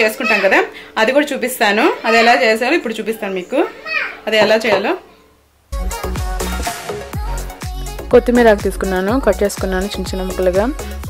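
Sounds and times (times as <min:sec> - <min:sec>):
woman speaking: 0:00.0 - 0:05.2, 0:08.1 - 0:10.8.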